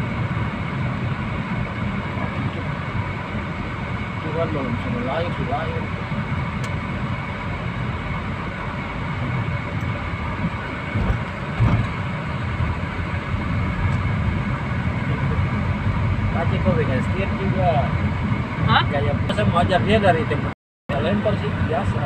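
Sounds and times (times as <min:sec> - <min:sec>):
car engine and tyre rumble: 0:00.0 - 0:22.0.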